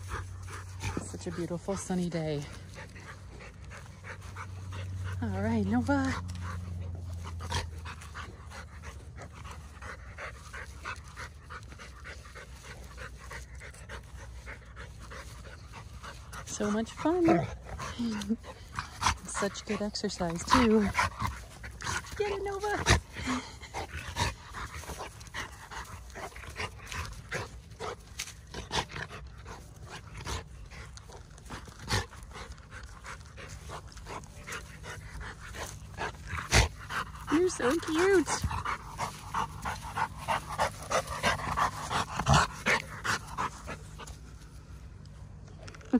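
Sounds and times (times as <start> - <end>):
dog panting: 0.0 - 45.4.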